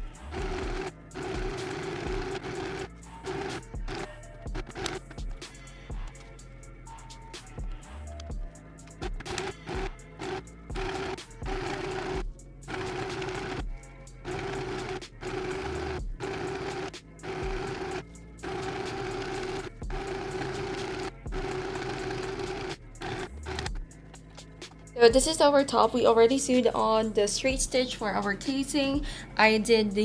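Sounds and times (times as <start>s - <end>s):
sewing machine motor humming: 0.0s - 5.0s, 9.0s - 23.8s
background music: 0.0s - 30.0s.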